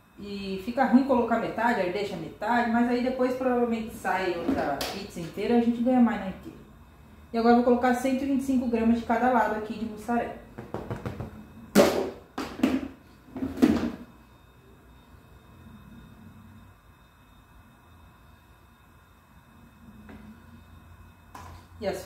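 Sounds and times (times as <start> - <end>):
faint steady hum: 0.0 - 22.0
plastic tub being knocked: 10.6 - 11.3.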